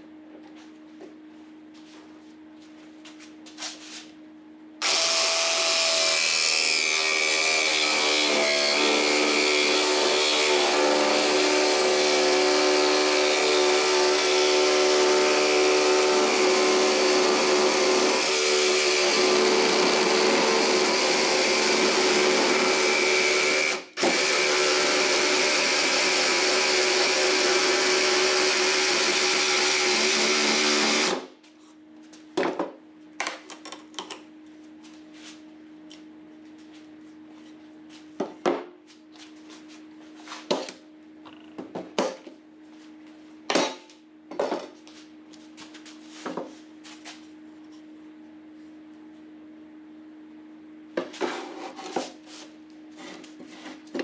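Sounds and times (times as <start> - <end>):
jigsaw cutting wood: 4.8 - 31.3.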